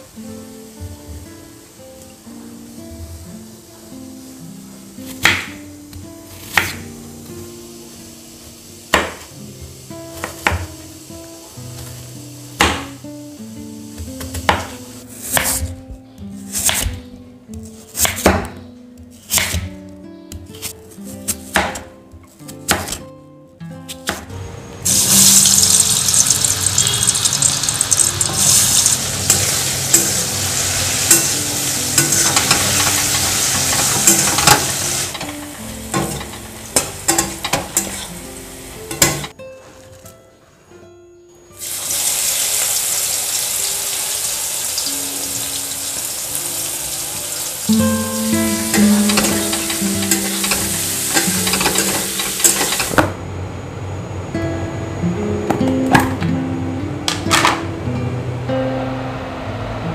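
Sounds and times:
soft background music: 0:00.0 - 0:26.6, 0:27.2 - 0:53.1
food sizzling in hot oil: 0:24.8 - 0:39.3, 0:41.6 - 0:53.0.

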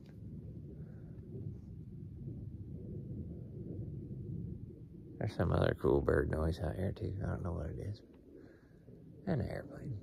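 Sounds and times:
distant airplane rumble: 0:00.0 - 0:10.0.

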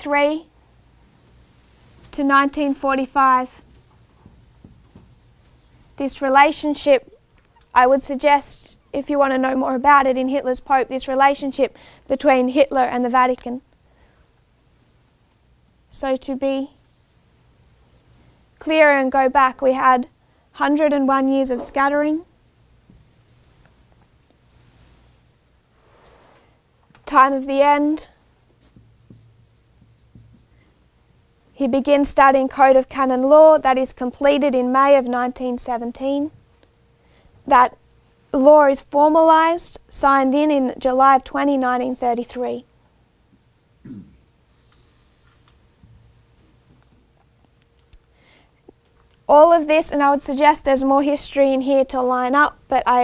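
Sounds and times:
marker writing on whiteboard: 0:03.5 - 0:05.8, 0:28.6 - 0:30.6.

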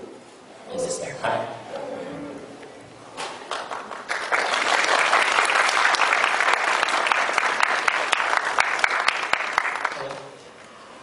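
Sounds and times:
audience applauding: 0:03.2 - 0:10.4.

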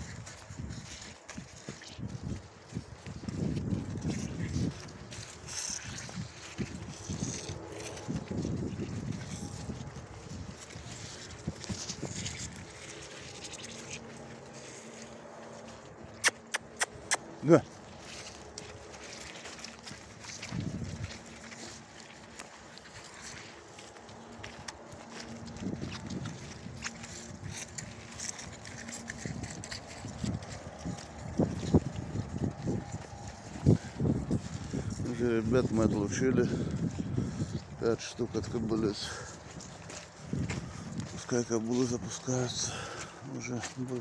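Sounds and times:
hooves on muddy ground: 0:00.0 - 0:44.0.

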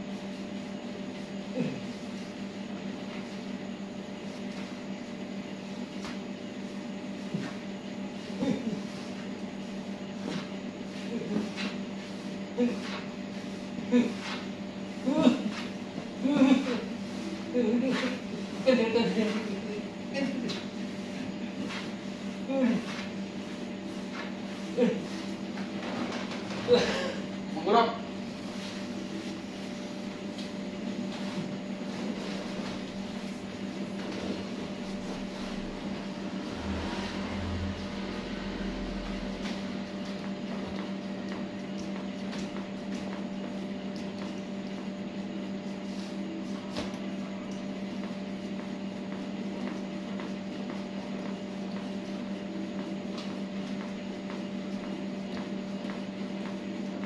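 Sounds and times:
appliance humming with hiss: 0:00.0 - 0:57.0.

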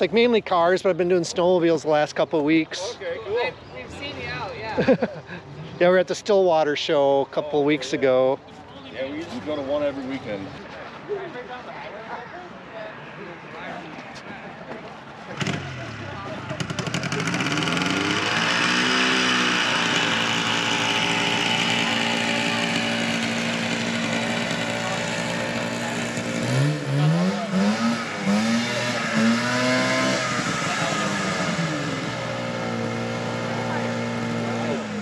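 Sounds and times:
snowmobile engine revving: 0:15.3 - 0:35.0.

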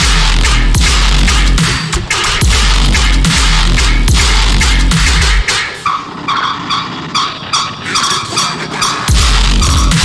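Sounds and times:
heavy bass: 0:00.0 - 0:05.6, 0:07.9 - 0:10.0
dubstep over sound system: 0:00.0 - 0:10.0
high synth stabs: 0:00.0 - 0:10.0.

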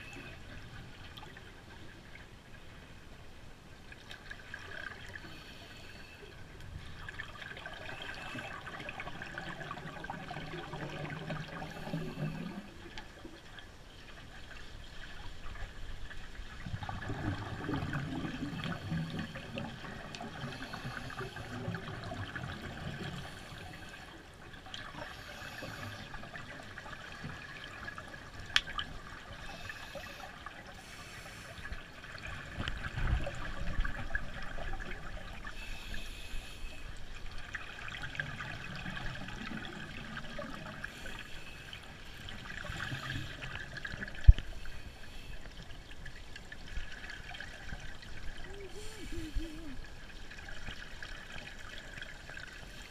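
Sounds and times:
underwater water movement: 0:00.0 - 0:52.9
scuba regulator bubbles: 0:16.6 - 0:24.0.

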